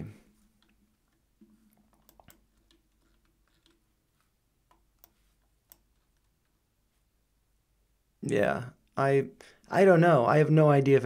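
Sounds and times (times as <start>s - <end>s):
computer mouse clicks: 0.5s - 6.6s.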